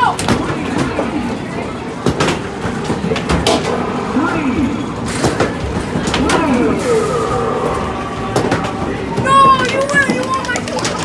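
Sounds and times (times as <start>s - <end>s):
voices: 3.1s - 11.0s
gliding falling tones: 6.3s - 10.2s.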